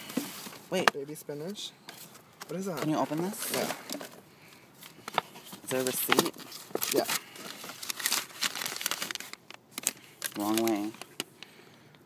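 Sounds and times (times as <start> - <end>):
plastic bags crinkling: 4.8 - 11.3.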